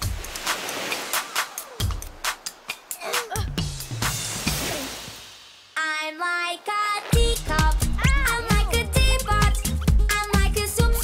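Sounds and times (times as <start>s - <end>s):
cartoon wave wash: 0.0s - 5.8s.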